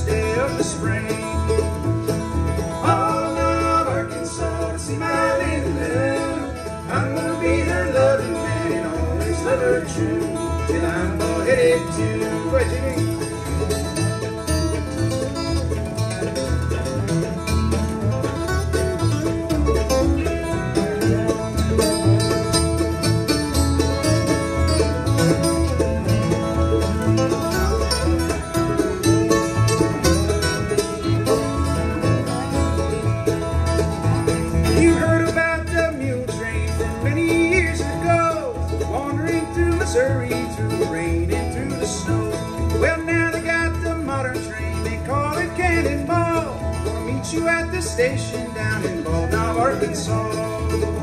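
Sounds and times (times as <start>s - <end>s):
acoustic guitar strumming: 0.0s - 51.0s
fiddle bowing lead: 0.0s - 51.0s
mandolin: 0.0s - 51.0s
upright bass plucking: 0.0s - 51.0s.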